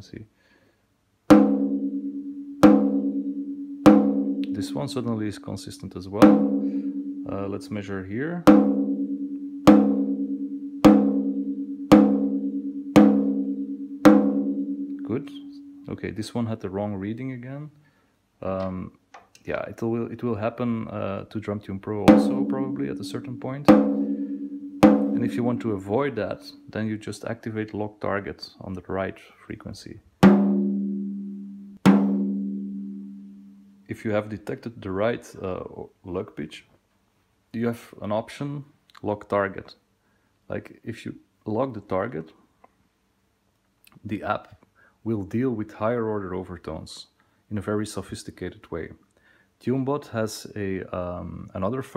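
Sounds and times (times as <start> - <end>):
drumstick striking drumhead: 1.3 - 3.3, 3.9 - 4.8, 6.2 - 7.3, 8.5 - 15.8, 22.1 - 25.7, 30.2 - 30.9, 31.8 - 33.0
drumstick tapping drumhead: 22.1 - 25.7.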